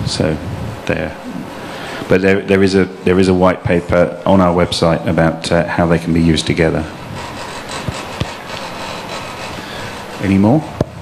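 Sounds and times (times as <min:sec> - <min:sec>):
steady room tone hiss: 0:00.0 - 0:11.0.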